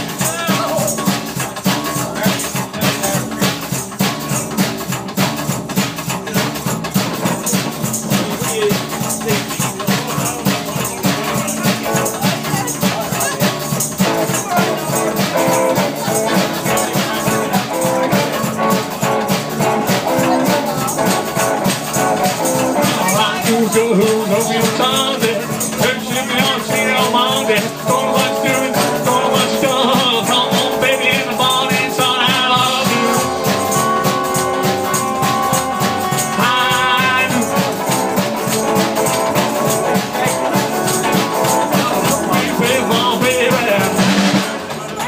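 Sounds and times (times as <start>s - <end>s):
double bass walking line: 0.0s - 45.0s
drum kit beat: 0.0s - 45.0s
electric guitar: 0.0s - 45.0s.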